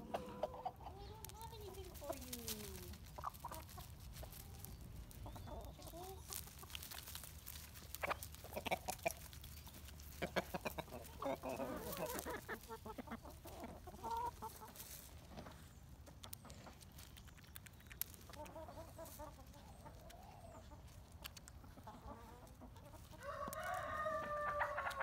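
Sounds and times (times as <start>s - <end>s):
hens clucking: 0.0s - 25.0s
sharp clicks and scuffs: 20.8s - 21.6s.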